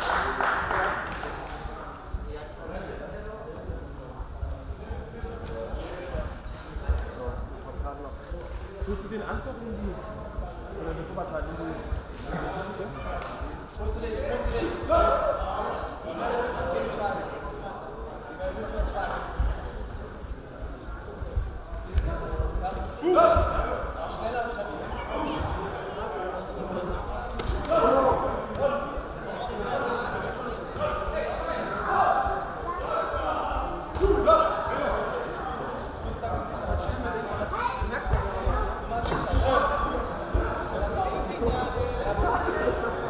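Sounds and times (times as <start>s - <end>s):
voices talking in echoing hall: 0.0s - 43.0s.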